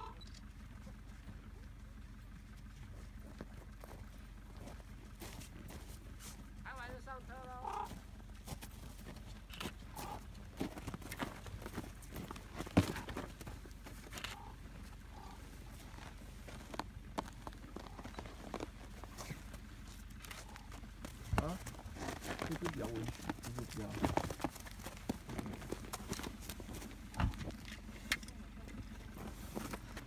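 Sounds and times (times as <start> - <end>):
footsteps crunching on snow: 2.7 - 6.7, 7.7 - 27.6.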